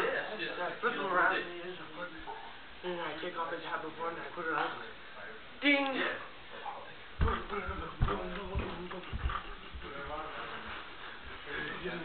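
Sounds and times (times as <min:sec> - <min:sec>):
feet thudding on carpet: 0:07.2 - 0:09.9.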